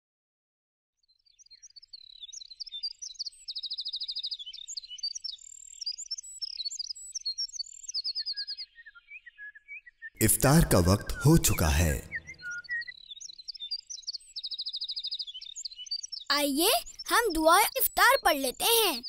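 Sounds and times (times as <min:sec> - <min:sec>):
birds chirping and trilling: 0:01.1 - 0:19.0.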